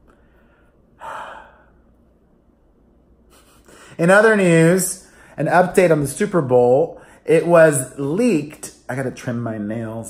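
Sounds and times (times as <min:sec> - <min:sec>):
man sighing: 0:01.0 - 0:01.8.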